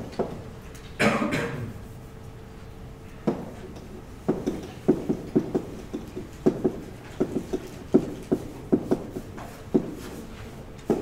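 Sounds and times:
chalk tapping on blackboard: 4.2s - 11.0s.

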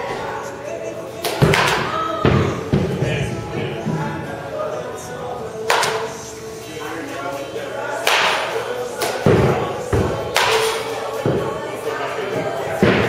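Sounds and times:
bat cracking baseballs: 1.2s - 3.8s, 5.6s - 6.3s, 7.9s - 13.0s
balls thudding into netting: 1.2s - 4.0s.

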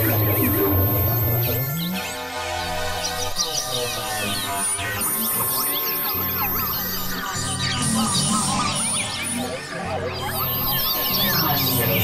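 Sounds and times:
synthesizer drone: 0.0s - 2.0s.

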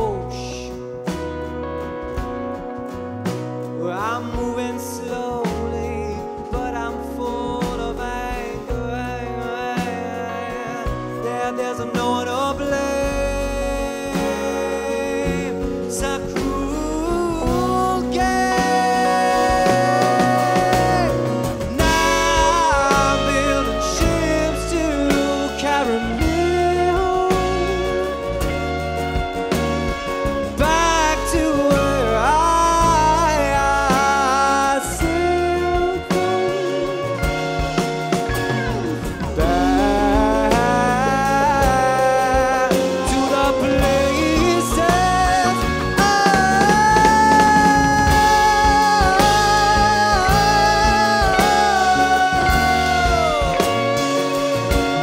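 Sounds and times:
man singing long notes: 0.0s - 0.9s, 3.8s - 55.0s
acoustic guitar: 0.0s - 55.0s
bass: 0.0s - 55.0s.

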